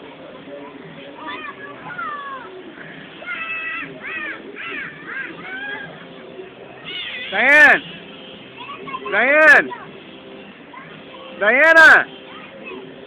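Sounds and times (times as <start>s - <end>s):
murmur of voices: 0.0s - 13.0s
children shouting and squealing: 0.5s - 13.0s.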